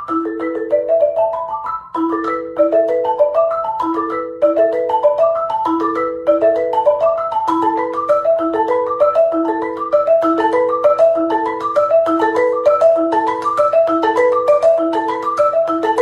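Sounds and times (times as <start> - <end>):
marimba with yarn mallets: 0.0 - 16.0.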